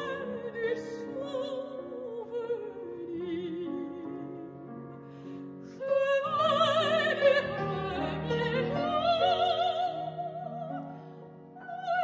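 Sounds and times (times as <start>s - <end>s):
soprano singing with vibrato: 0.0s - 4.7s, 5.6s - 12.0s
piano accompaniment: 0.0s - 12.0s.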